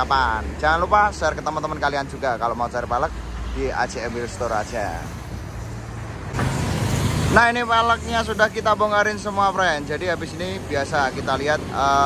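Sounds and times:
heavy vehicle passing: 0.0s - 12.0s
road traffic rumble: 0.0s - 12.0s.

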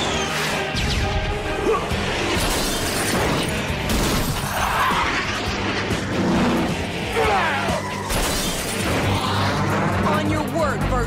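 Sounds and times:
dramatic orchestral score: 0.0s - 11.0s.

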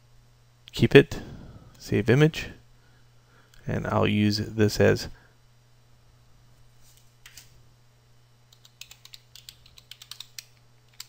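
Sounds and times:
low steady hum: 0.0s - 11.0s
typing on computer keyboard: 8.5s - 11.0s.

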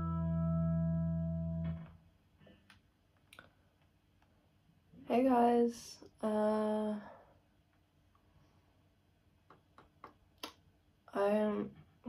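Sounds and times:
electric guitar chord: 0.0s - 1.9s.

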